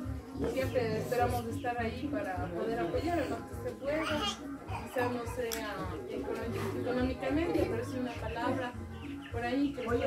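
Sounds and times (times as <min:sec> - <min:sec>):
children talking and calling out: 0:02.9 - 0:10.0.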